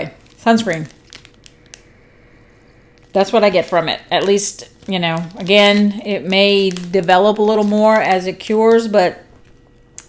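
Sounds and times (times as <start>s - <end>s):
faint steady hum: 0.0s - 10.0s
plastic wrapper crinkling: 0.0s - 10.0s.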